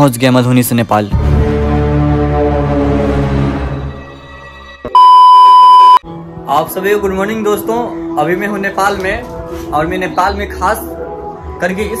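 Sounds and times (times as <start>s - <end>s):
high electronic beep: 4.9s - 6.0s.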